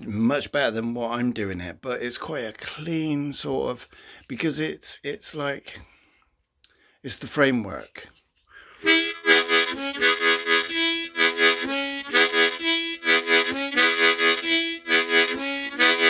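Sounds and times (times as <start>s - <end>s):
harmonica blues rhythm: 8.7s - 16.0s.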